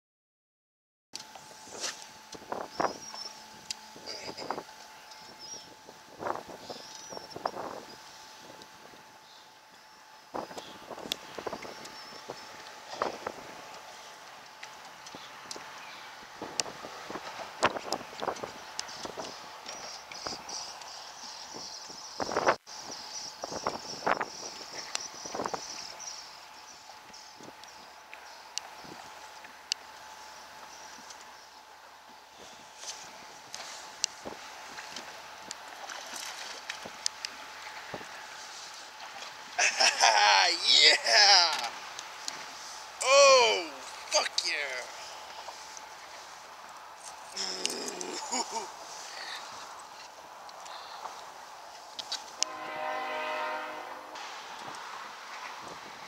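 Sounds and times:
water around a boat: 0:01.2 - 0:53.6, 0:54.2 - 0:56.0
wind: 0:01.2 - 0:56.0
wind noise on microphone: 0:01.5 - 0:04.7, 0:05.3 - 0:09.1, 0:10.3 - 0:13.6, 0:16.4 - 0:19.5, 0:21.5 - 0:26.0, 0:55.5 - 0:56.0.

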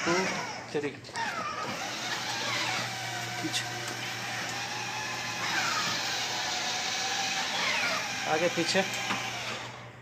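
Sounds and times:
toy car electric motor whine: 0:01.2 - 0:09.8.

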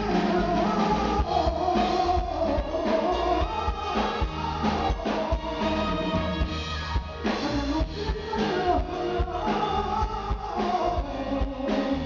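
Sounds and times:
man singing into microphone: 0:00.0 - 0:06.6, 0:07.2 - 0:12.0
drum beat thumping: 0:00.0 - 0:11.9
band playing: 0:00.0 - 0:12.0.

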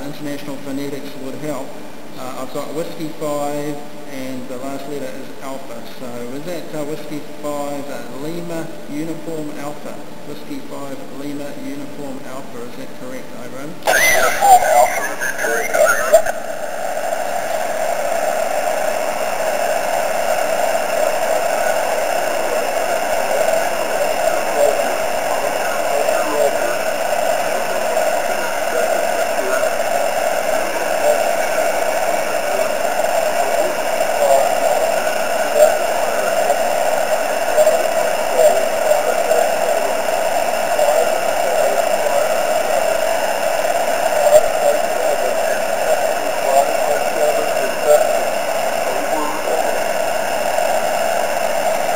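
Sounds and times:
radio receiver hiss: 0:13.8 - 0:51.9.

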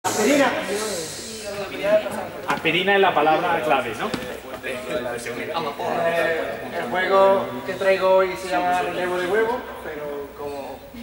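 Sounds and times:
short hiss: 0:00.1 - 0:01.6
people talking: 0:00.1 - 0:11.0.

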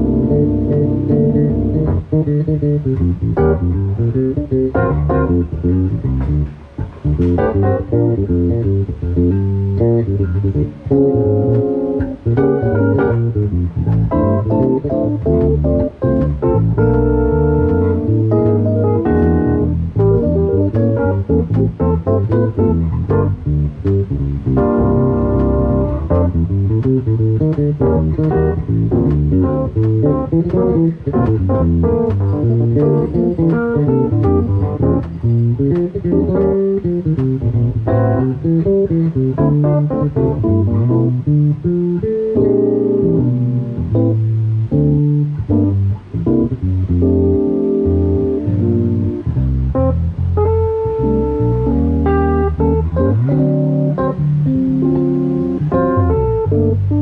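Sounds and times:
electric bass line: 0:00.0 - 0:57.0
sustained keyboard chords: 0:00.0 - 0:57.0.

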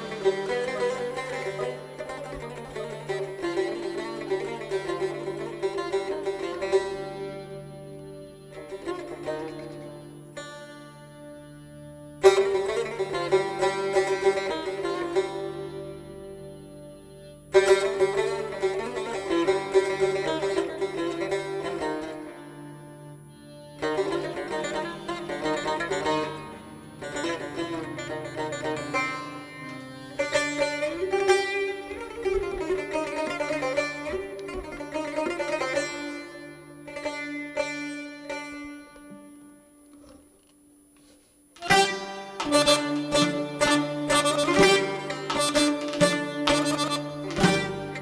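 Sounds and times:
accordion: 0:00.0 - 0:31.2, 0:41.6 - 0:48.0
lute played with a plectrum: 0:00.0 - 0:48.0.

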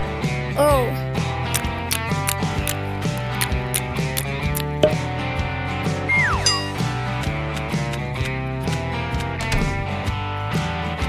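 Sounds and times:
cartoon background music: 0:00.0 - 0:11.0
falling whistle sound effect: 0:06.1 - 0:06.8.

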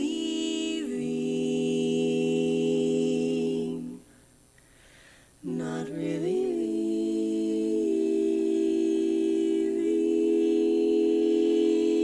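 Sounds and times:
women singing a cappella harmony: 0:00.0 - 0:04.2, 0:05.4 - 0:12.0.

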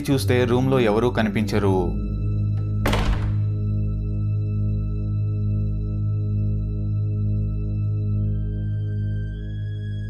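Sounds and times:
door slamming: 0:02.6 - 0:03.7.

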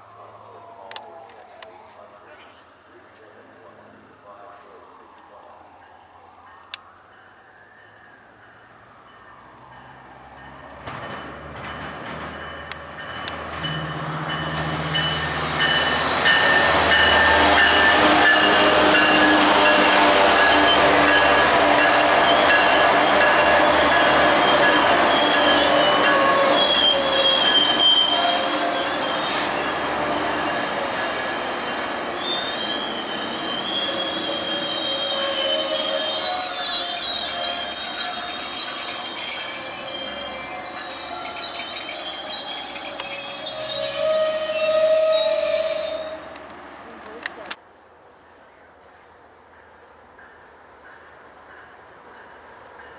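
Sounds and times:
diesel locomotive engine drone: 0:00.0 - 0:47.6
train coaches rumbling past: 0:00.1 - 0:47.6, 0:49.4 - 0:52.9
train wheel squeal: 0:09.3 - 0:46.3.

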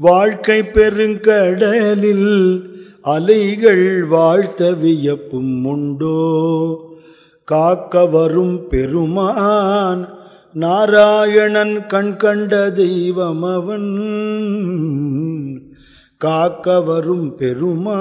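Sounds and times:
man singing devotional verse: 0:00.0 - 0:18.0.

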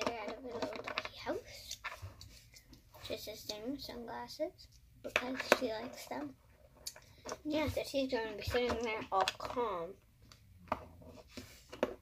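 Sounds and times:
girl's soft wordless voice: 0:00.0 - 0:01.8, 0:02.9 - 0:06.4, 0:07.2 - 0:10.0.

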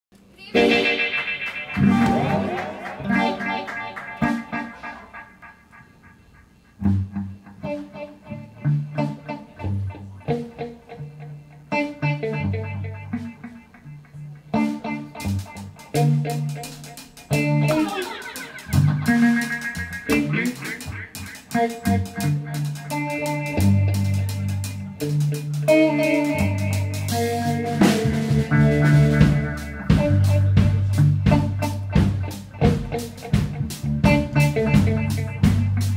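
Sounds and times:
electric guitar: 0:00.2 - 0:35.9
electric bass notes: 0:00.5 - 0:35.9.

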